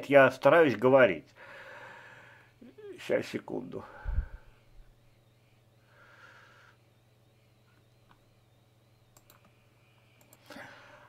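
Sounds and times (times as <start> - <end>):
steady low hum: 0.0 - 11.0
computer mouse clicks: 9.1 - 10.5.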